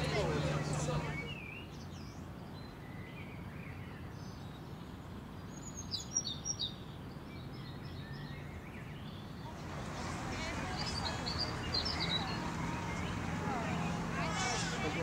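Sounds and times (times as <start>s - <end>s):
low outdoor background hum: 0.0s - 15.0s
bird chirping: 5.4s - 15.0s.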